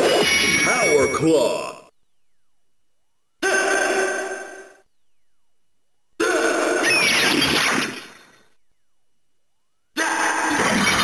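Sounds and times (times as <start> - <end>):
toy ringing effect: 0.2 - 1.6.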